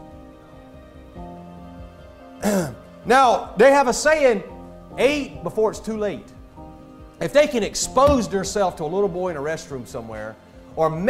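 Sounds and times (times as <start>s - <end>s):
soft background music: 0.0s - 11.0s
man clearing his throat: 2.4s - 2.8s.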